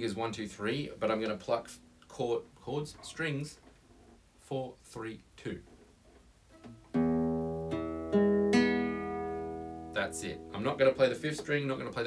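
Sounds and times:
classical guitar plucks: 0:06.5 - 0:11.7.

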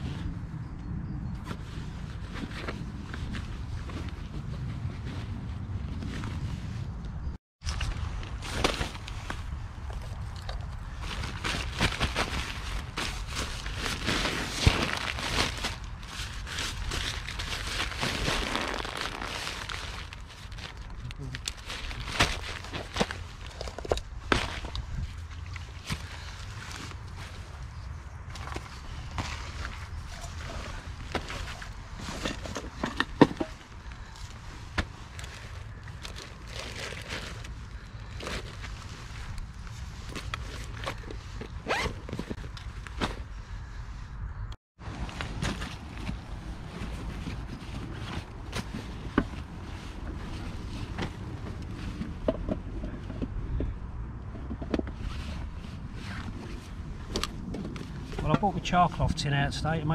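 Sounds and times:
fabric and rucksack rustling: 0:01.4 - 0:43.8, 0:44.8 - 0:53.2, 0:54.8 - 0:59.9.

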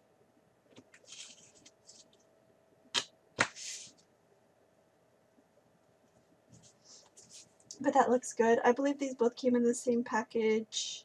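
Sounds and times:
paper pages sliding on a mat: 0:01.0 - 0:02.1, 0:03.4 - 0:04.0, 0:06.5 - 0:07.5.

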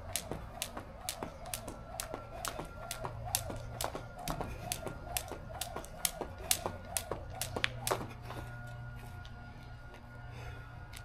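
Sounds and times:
jump rope slapping concrete: 0:00.0 - 0:08.5.

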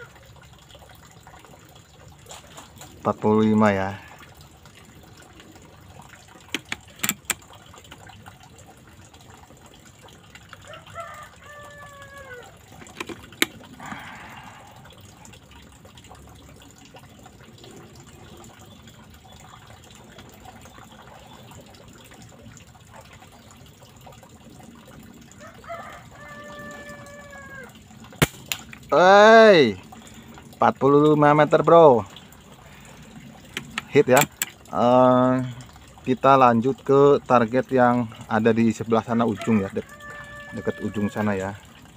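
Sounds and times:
rooster crowing: 0:10.6 - 0:12.6, 0:25.4 - 0:27.8, 0:39.3 - 0:41.2
pellet hitting target: 0:28.2 - 0:28.7.

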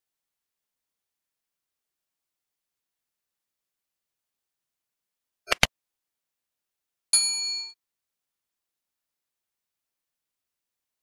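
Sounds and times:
notification bell ding: 0:07.2 - 0:07.8.

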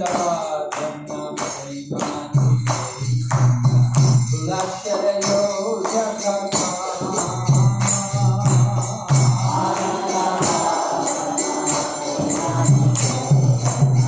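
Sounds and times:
man singing a devotional chant: 0:00.0 - 0:14.0
small hand cymbals striking: 0:00.0 - 0:14.0.

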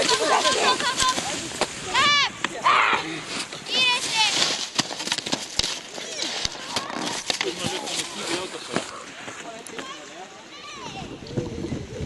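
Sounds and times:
ski poles clicking on snow: 0:03.7 - 0:09.0.

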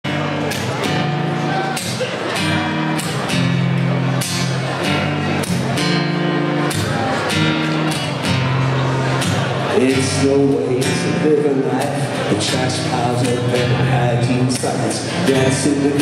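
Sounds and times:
rock band playing live: 0:00.0 - 0:16.0
strummed guitars: 0:00.0 - 0:16.0.

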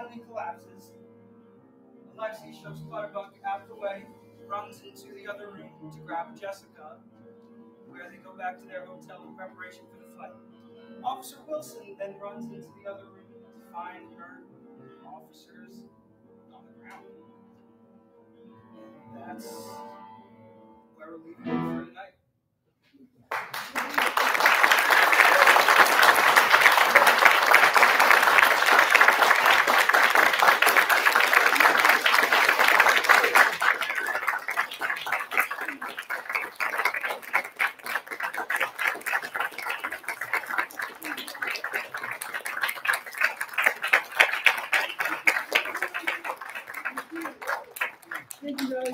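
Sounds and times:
audience applauding: 0:23.3 - 0:48.9.

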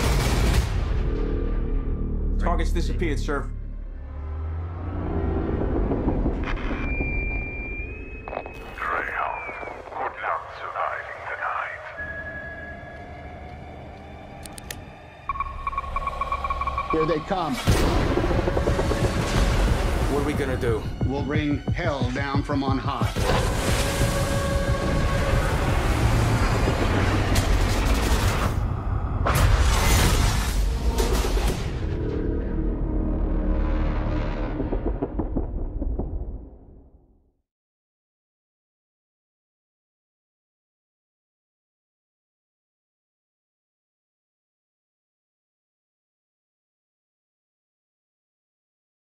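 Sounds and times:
dramatic trailer music: 0:00.0 - 0:08.8, 0:10.4 - 0:37.2
deep rumble: 0:00.9 - 0:12.0, 0:23.4 - 0:37.0.

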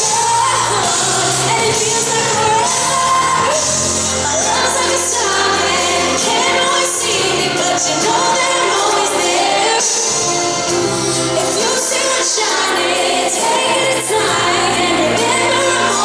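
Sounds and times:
band accompaniment: 0:00.0 - 0:16.0
woman singing pop ballad: 0:00.0 - 0:16.0.

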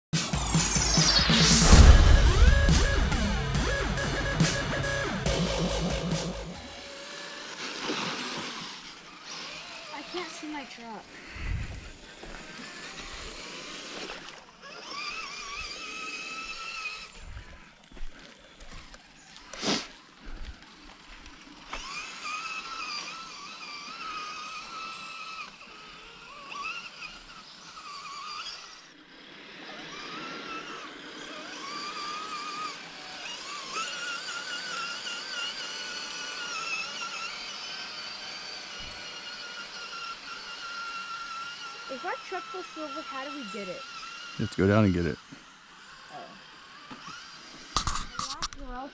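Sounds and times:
electric motors whining: 0:00.2 - 0:48.9.

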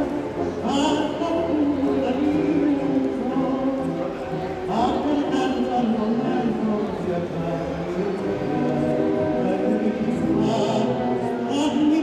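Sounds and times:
tango music with singing: 0:00.0 - 0:12.0.

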